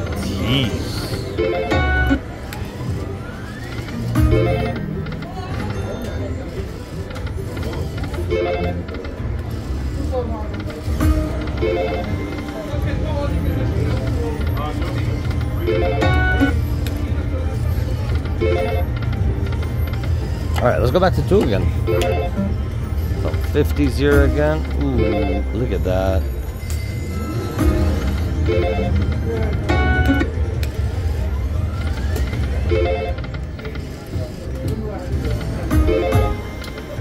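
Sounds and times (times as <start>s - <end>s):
low hum of casino floor: 0.0s - 37.0s
slot machine spinning: 0.0s - 37.0s.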